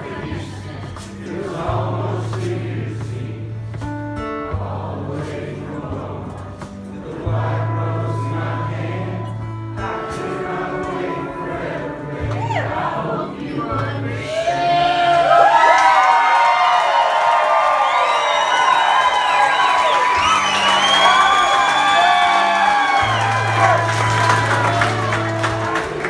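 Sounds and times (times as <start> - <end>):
strummed acoustic guitar: 0.0 - 14.3, 20.2 - 26.0
live band music: 7.9 - 14.0, 20.2 - 26.0
audience cheering and whooping: 14.2 - 26.0.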